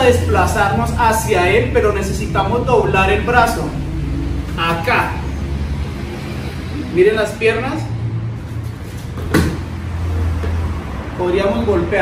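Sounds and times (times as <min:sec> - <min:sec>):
steady low hum: 0:00.0 - 0:11.2
body landing on padded mat: 0:09.2 - 0:09.7.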